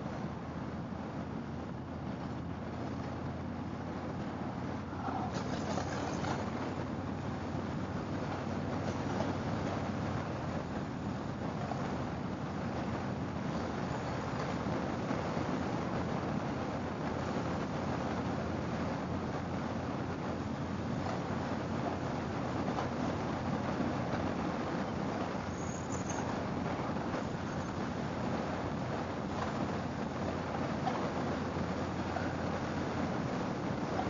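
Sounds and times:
wind and road noise: 0.0s - 34.0s
motorcycle engine cruising: 1.4s - 34.0s.

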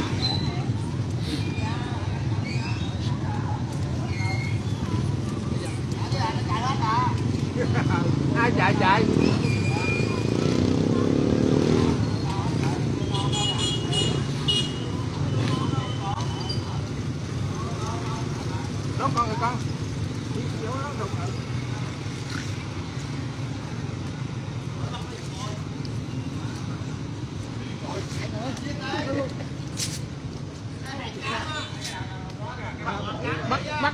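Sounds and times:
people's voices nearby: 0.0s - 33.9s
road traffic rumble: 0.0s - 33.9s.

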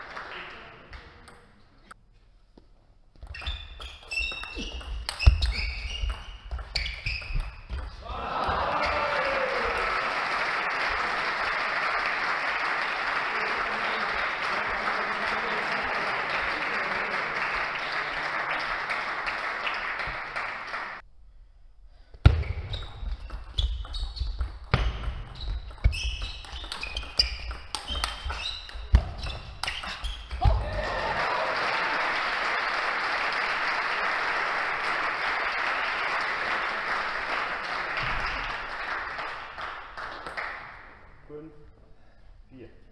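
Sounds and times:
applause: 0.0s - 1.1s, 8.1s - 21.0s, 30.5s - 41.0s
people shouting: 8.0s - 10.0s, 30.4s - 31.5s.

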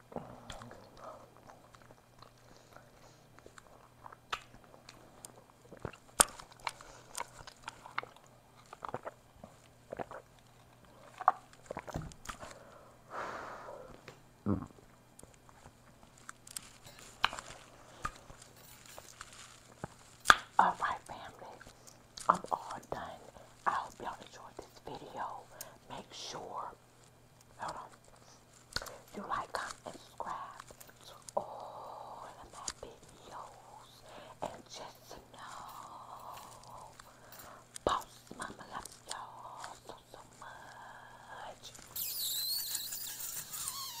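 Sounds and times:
woman whispering: 20.6s - 26.8s, 27.6s - 28.2s, 29.0s - 37.0s, 37.8s - 41.9s
mouth clicks: 41.9s - 44.0s.

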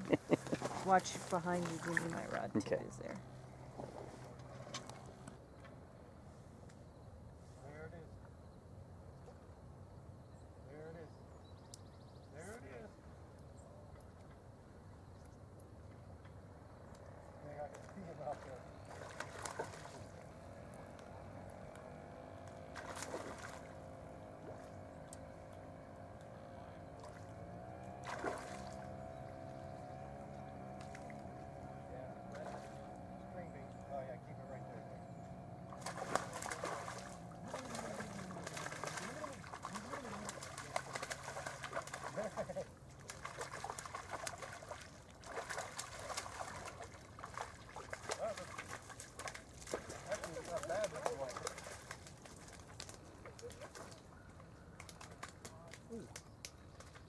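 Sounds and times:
water sounds: 0.0s - 5.4s, 17.0s - 57.0s
distant engine hum: 0.0s - 57.0s
bird calls: 9.2s - 27.5s, 28.1s - 57.0s
faint voices: 37.0s - 41.1s.

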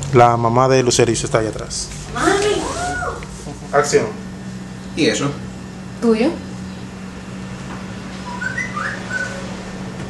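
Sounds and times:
steady low hum: 0.0s - 10.0s
high whistle-like chirps: 8.2s - 9.5s.

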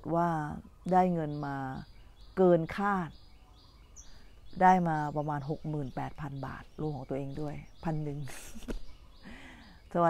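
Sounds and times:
woman speaking: 0.0s - 1.8s, 2.4s - 3.1s, 4.6s - 8.7s, 9.3s - 10.0s.

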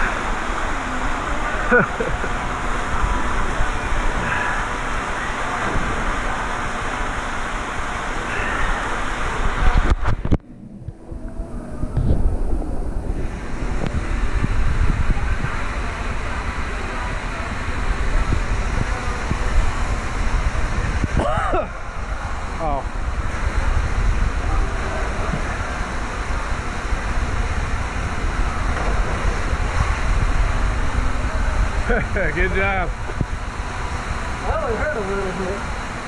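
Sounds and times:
steady rushing noise: 0.0s - 36.0s.

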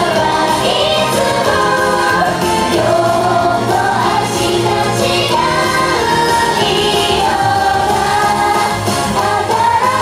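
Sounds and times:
pop backing music: 0.0s - 10.0s
women singing in unison: 0.0s - 10.0s.

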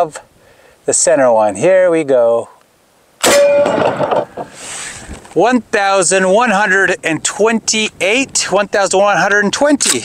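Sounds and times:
shotgun blast: 3.2s - 4.1s.

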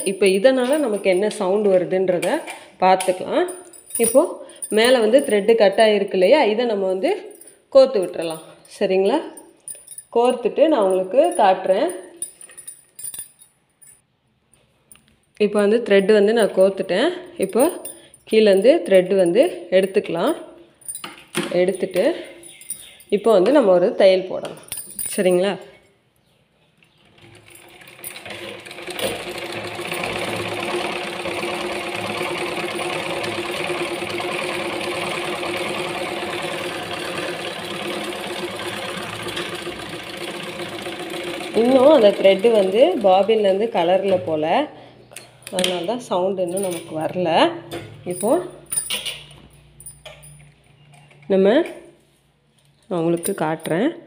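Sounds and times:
sewing machine stitching: 27.1s - 43.7s.

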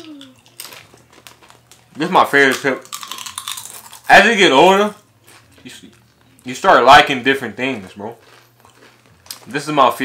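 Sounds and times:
tortilla chips crunching: 0.0s - 6.6s, 7.4s - 10.0s.

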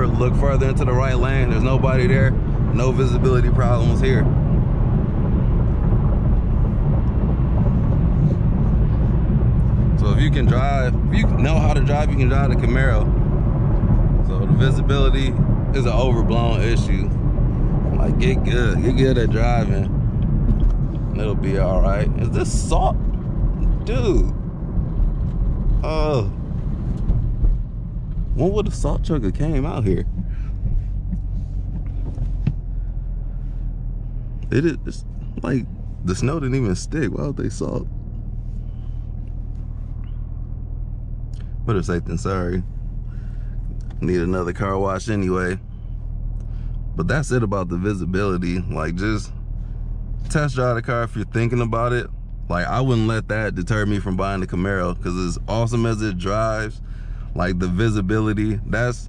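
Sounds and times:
car engine rumble: 0.0s - 59.0s
tyres on road: 0.0s - 59.0s.

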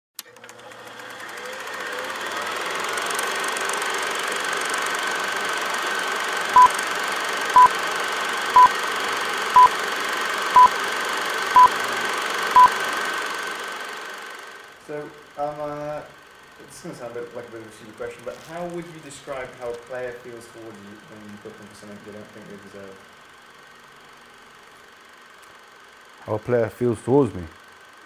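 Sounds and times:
film projector whirring rattle: 0.2s - 28.0s.

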